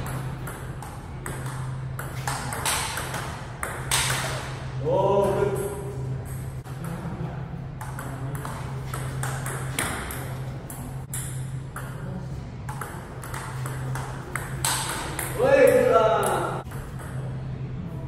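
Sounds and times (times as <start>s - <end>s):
steady low hum: 0.0s - 18.0s
table tennis ball clicking: 12.7s - 17.3s.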